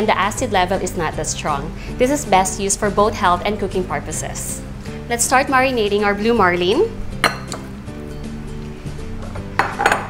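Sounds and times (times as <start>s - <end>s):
background music: 0.0s - 10.0s
glass bowls clinking: 7.2s - 7.7s, 9.6s - 10.0s.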